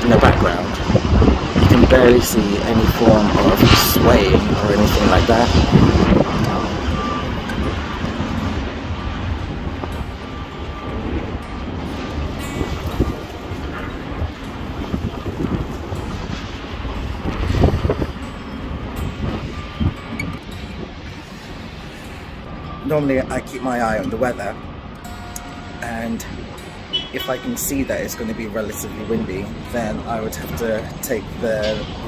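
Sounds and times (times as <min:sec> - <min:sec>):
gusty wind buffeting microphone: 0:00.0 - 0:32.0.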